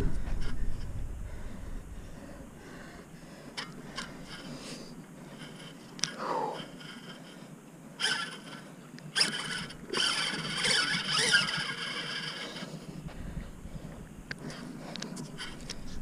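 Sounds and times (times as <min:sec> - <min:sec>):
fishing reel cranking: 0:08.0 - 0:12.7.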